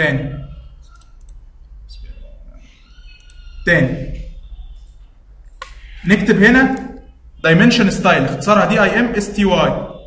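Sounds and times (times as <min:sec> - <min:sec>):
computer mouse clicks: 0:00.8 - 0:01.4, 0:03.1 - 0:03.6.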